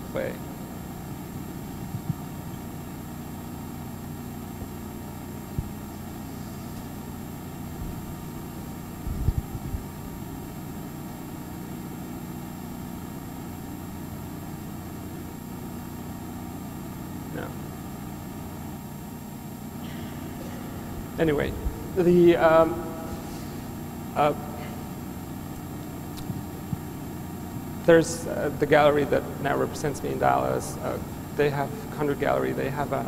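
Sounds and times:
low room hum: 0:00.0 - 0:33.0.

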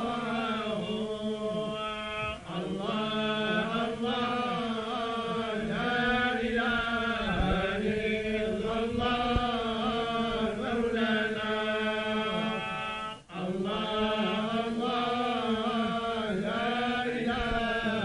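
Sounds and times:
low held drone tone: 0:00.0 - 0:17.7
men chanting in unison: 0:00.0 - 0:18.0.

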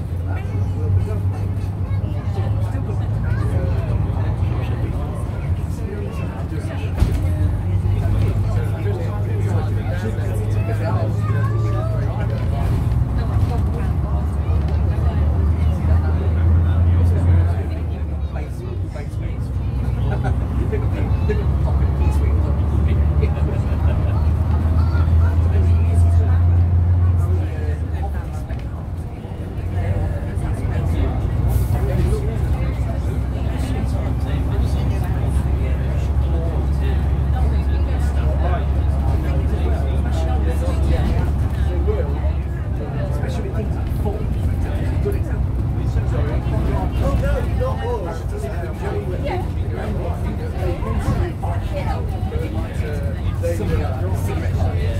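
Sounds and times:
bus diesel engine droning: 0:00.0 - 0:54.9.

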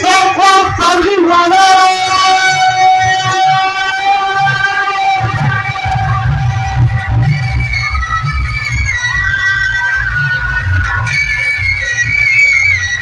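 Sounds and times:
heavy bass: 0:00.0 - 0:13.0
loud music through loudspeakers: 0:00.0 - 0:13.0.

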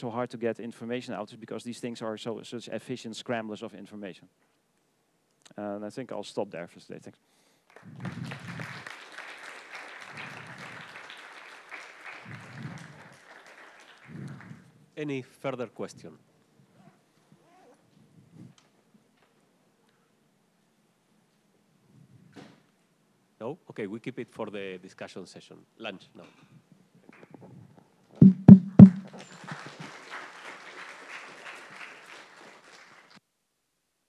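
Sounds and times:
thumps on headset microphone: 0:28.2 - 0:29.2.

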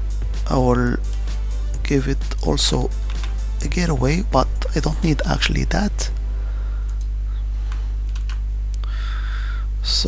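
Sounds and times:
low hum: 0:00.0 - 0:10.0
computer keyboard typing: 0:08.1 - 0:08.4.

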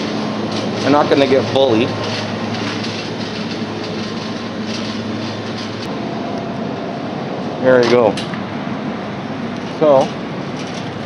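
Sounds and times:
shopping cart rattling: 0:00.0 - 0:05.9, 0:09.6 - 0:11.0.

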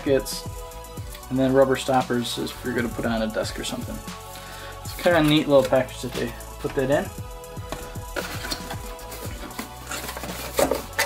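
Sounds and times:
background music: 0:00.0 - 0:11.0
cardboard box and foam handling: 0:07.7 - 0:11.0.

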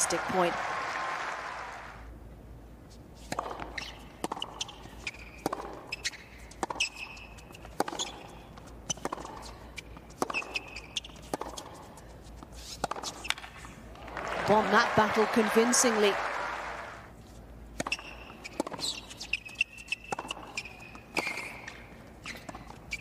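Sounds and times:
tennis ball struck by rackets: 0:03.2 - 0:11.8, 0:12.8 - 0:13.6, 0:17.8 - 0:22.6.

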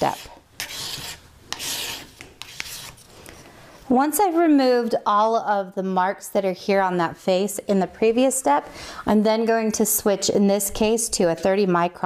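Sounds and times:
sandpaper rubbing on steel: 0:00.0 - 0:03.0.

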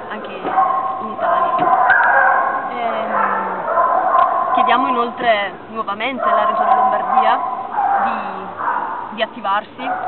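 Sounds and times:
dogs howling and yelping: 0:00.1 - 0:05.4, 0:06.0 - 0:09.2.

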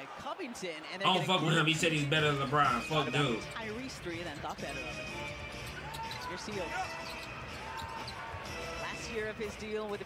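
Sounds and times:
crowd noise: 0:00.0 - 0:04.6.

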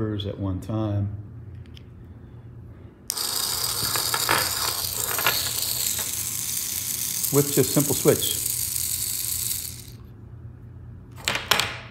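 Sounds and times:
small motors whirring: 0:03.1 - 0:10.1.

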